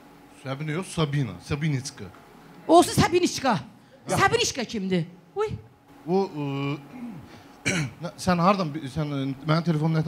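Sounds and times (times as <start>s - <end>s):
throat clearing: 6.8s - 8.0s.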